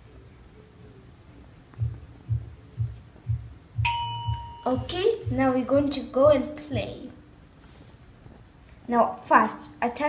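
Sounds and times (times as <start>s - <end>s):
low heartbeat-like electronic thumps: 1.8s - 6.5s
bright electronic ding: 3.9s - 4.7s.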